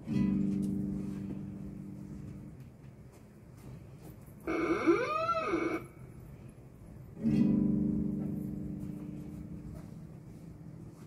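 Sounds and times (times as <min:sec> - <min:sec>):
drawn-out call: 0:04.5 - 0:05.8.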